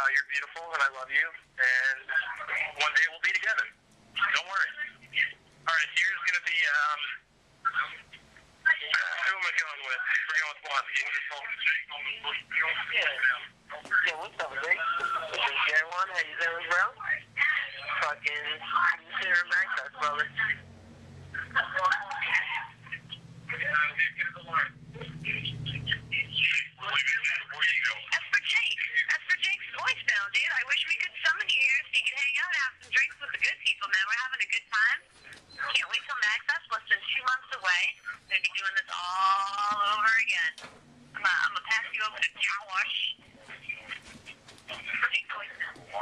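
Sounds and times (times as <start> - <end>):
steady low hum: 0.0 - 46.0
voicemail speech through phone speaker: 0.0 - 46.0.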